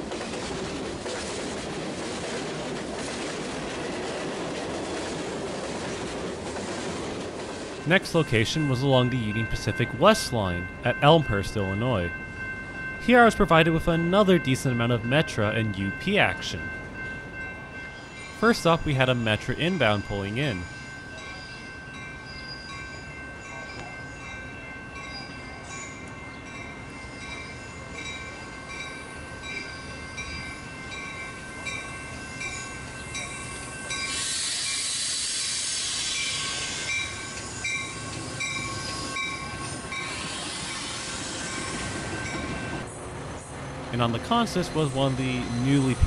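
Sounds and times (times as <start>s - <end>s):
train rumbling in: 0.0s - 23.2s, 24.1s - 46.0s
crossing bells ringing: 7.6s - 35.1s, 36.2s - 43.0s, 43.9s - 46.0s
loud air hiss: 34.1s - 37.1s, 40.0s - 41.8s.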